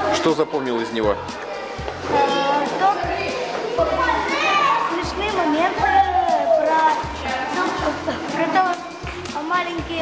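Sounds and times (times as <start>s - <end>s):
background music with low beat: 0.0s - 10.0s
children chattering: 0.0s - 10.0s
boy talking: 1.4s - 10.0s.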